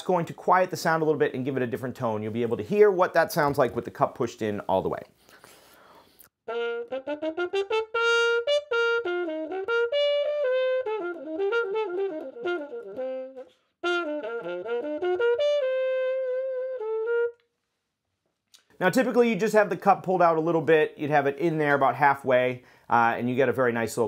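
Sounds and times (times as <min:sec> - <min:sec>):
muted trumpet playing: 0:06.5 - 0:17.4.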